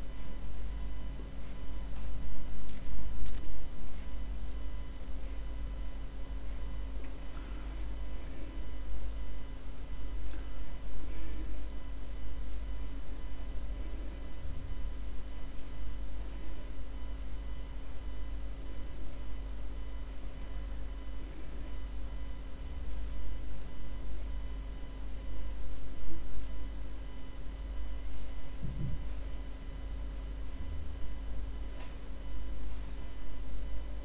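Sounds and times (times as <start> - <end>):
faint electrical whine: 0.0 - 34.0
low hum and rumble: 0.0 - 34.0.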